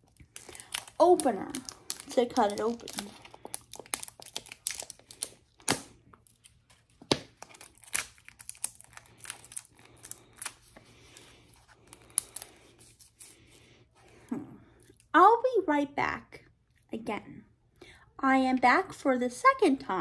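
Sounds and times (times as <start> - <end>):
plastic wrapping crinkling and tearing: 0.0 - 13.4.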